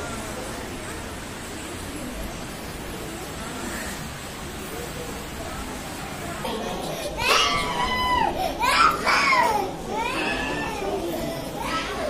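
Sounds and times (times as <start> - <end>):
children calling out: 6.4 - 12.0.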